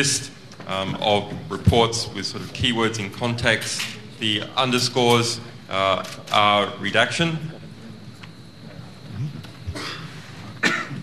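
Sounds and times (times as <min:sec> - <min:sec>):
person coughing: 0:09.7 - 0:11.0.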